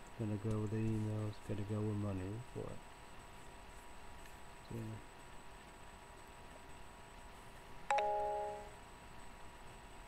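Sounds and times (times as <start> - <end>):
two-note chime: 7.9 - 8.8.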